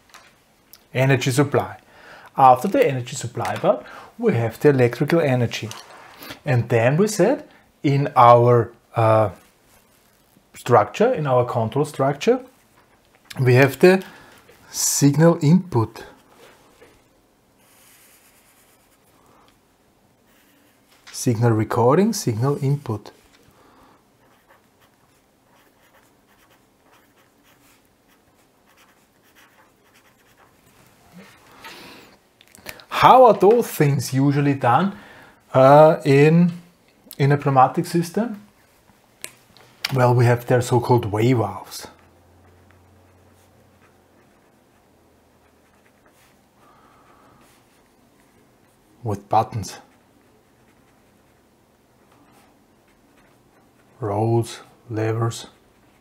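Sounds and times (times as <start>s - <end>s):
pen scratching on paper: 24.2s - 31.4s, 42.4s - 46.4s, 49.8s - 51.5s, 52.2s - 54.0s.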